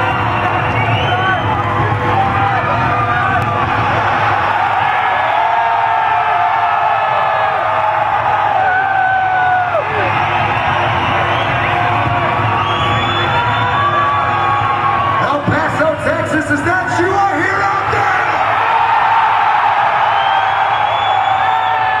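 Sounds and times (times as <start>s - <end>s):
concert crowd cheering and screaming: 0.0s - 22.0s.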